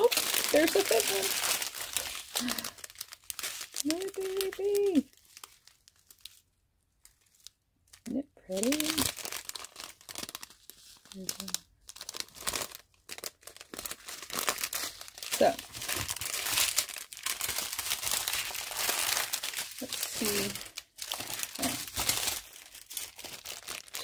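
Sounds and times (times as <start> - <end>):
plastic bags crinkling: 0.0 - 24.0.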